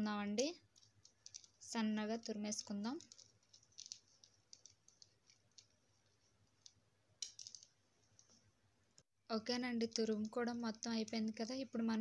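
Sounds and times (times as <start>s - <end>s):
woman speaking: 0.0s - 0.6s, 1.6s - 3.1s, 9.3s - 12.0s.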